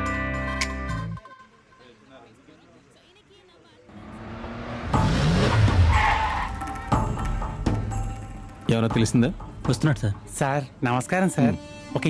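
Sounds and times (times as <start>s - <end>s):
car engine revving: 3.9s - 8.4s
tyres skidding: 3.9s - 8.7s.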